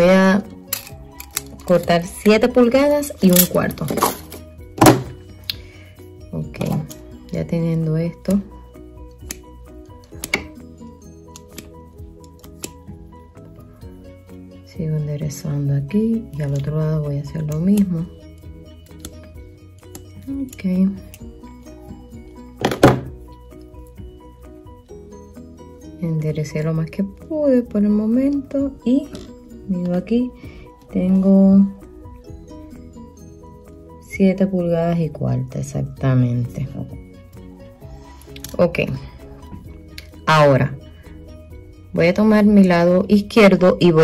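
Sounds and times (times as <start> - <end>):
background music: 0.0 - 44.0
object set down on hard surface: 4.0 - 5.2, 22.6 - 23.2
wire thunking on cutting mat: 22.6 - 23.1.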